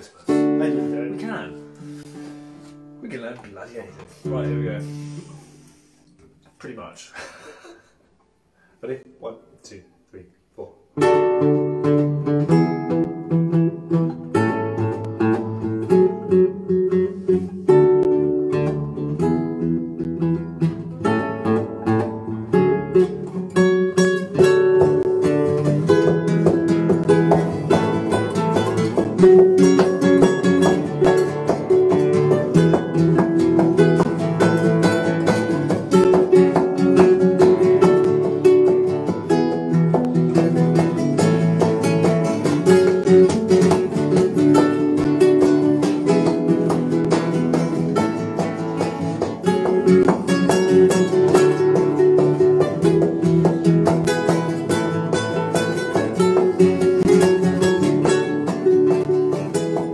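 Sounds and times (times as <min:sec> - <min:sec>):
classical guitar duet: 0:00.0 - 0:07.9, 0:10.9 - 0:59.9.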